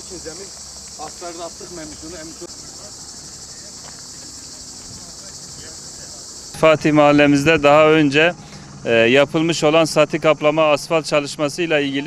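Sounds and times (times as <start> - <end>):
insect chorus buzzing: 0.0 - 12.0.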